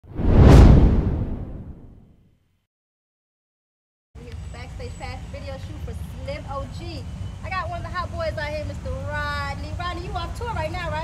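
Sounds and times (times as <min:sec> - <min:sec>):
whoosh with deep rumble: 0:00.0 - 0:02.1.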